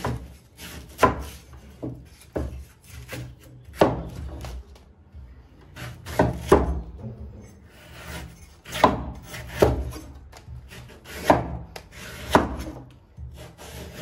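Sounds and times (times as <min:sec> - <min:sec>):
cleaver chopping on wooden board: 0:00.0 - 0:04.6, 0:05.8 - 0:06.9, 0:08.0 - 0:14.0.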